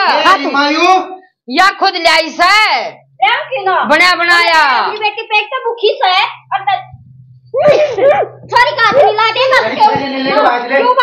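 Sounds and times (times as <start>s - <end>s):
low steady hum: 6.3s - 10.4s.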